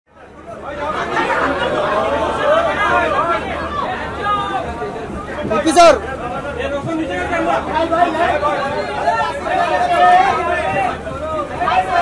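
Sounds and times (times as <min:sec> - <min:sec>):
crowd of voices talking: 0:00.1 - 0:12.0.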